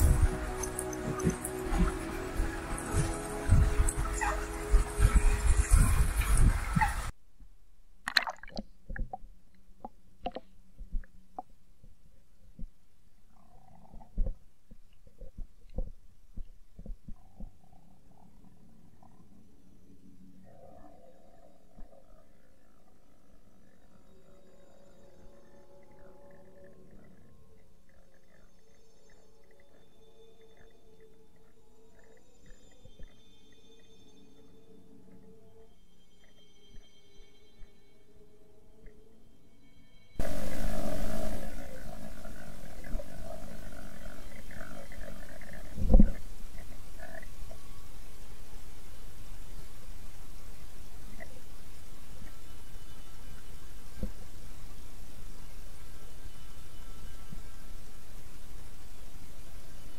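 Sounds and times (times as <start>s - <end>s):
faint whines and hums: 0.0s - 7.2s, 9.8s - 59.9s.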